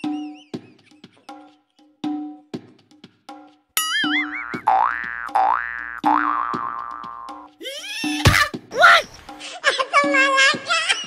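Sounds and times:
steady percussion beat: 0.0 - 8.8
wobbly boing effect: 3.8 - 7.4.

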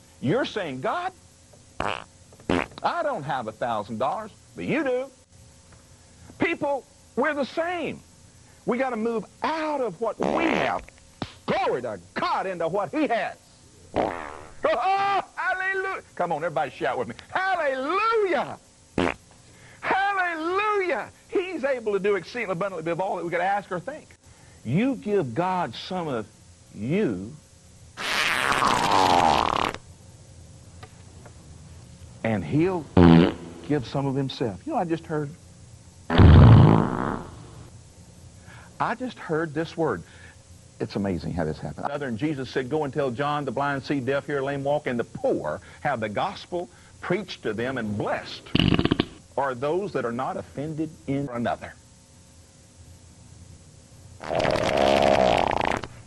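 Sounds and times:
fart sound effect: 1.8 - 2.8, 10.2 - 10.9, 13.9 - 14.7, 19.0 - 19.2, 28.0 - 29.8, 33.0 - 33.7, 36.1 - 37.6, 48.5 - 49.2, 54.2 - 56.0.

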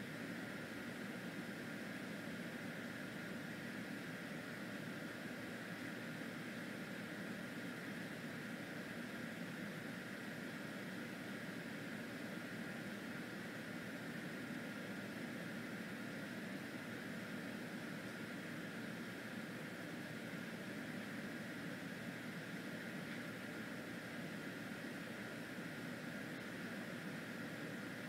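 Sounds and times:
steady background hum and hiss: 0.0 - 28.0.

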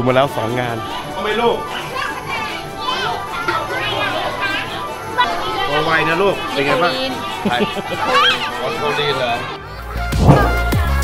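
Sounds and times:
faint background music: 0.0 - 11.0
young children chattering: 0.1 - 10.7.

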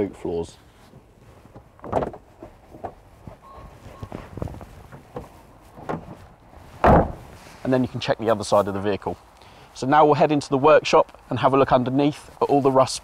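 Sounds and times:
car door shutting: 1.5 - 7.4
rubber mat knocking and rustling: 1.5 - 7.4.

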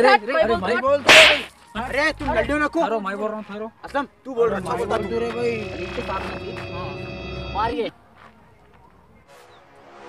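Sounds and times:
loud whip-like swish: 1.1 - 1.5.

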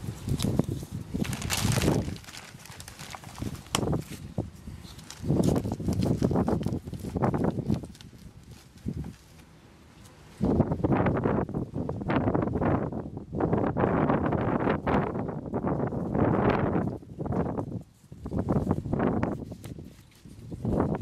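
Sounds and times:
plastic pot rustling and crinkling: 0.0 - 10.6, 16.7 - 21.0.

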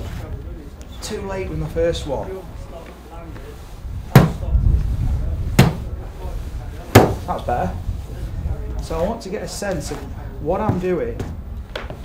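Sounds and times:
golf club striking turf mat: 4.1 - 4.5, 5.6 - 5.9, 6.9 - 7.3.

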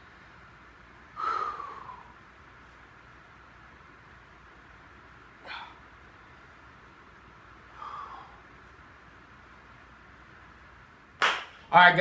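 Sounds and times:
man exhaling sharply: 1.2 - 2.1.

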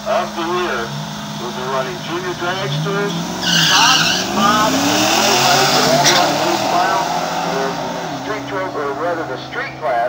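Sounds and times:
car engines accelerating hard: 0.0 - 10.0
man speaking over pa system: 0.0 - 10.0.

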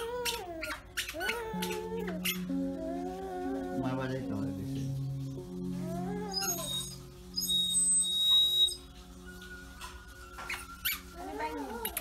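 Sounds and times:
background music low notes: 0.0 - 12.0.

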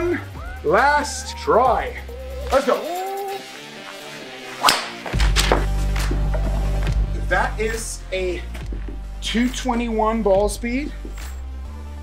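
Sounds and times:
music with deep bass: 0.0 - 12.0
golf club swishing: 3.8 - 6.7
golf club hitting ball: 4.6 - 5.7.

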